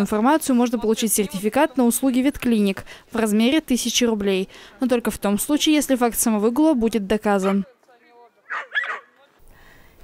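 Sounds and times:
dog barking: 0:07.4 - 0:07.7, 0:08.5 - 0:09.2.

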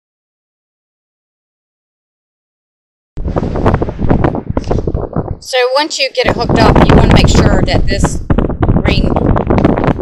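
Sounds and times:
wind buffeting microphone: 0:03.2 - 0:10.0.

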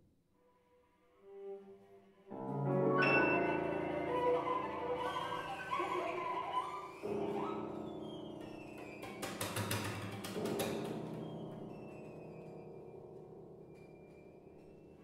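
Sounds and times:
piano: 0:00.0 - 0:15.0
cello: 0:00.4 - 0:15.0.

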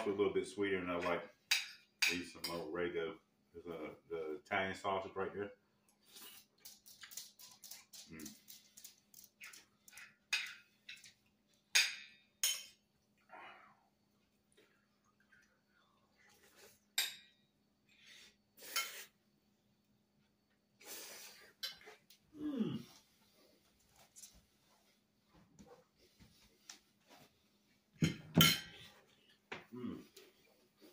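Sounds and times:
cutlery clinking on plate: 0:11.7 - 0:12.8, 0:28.0 - 0:28.9
person humming mm: 0:22.4 - 0:23.0, 0:29.7 - 0:30.2.

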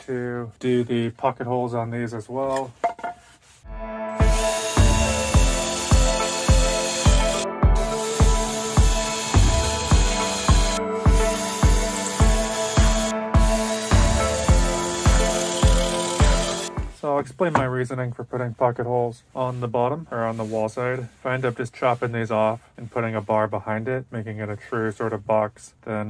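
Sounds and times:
music with beat and synth tones: 0:03.7 - 0:17.0.

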